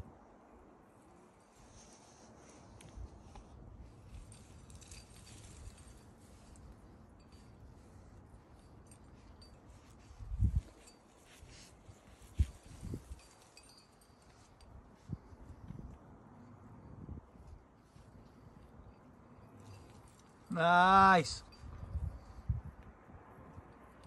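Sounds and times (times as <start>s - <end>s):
rope being handled: 1.5s - 14.6s
metal climbing gear clinking: 3.9s - 15.9s, 16.8s - 22.4s.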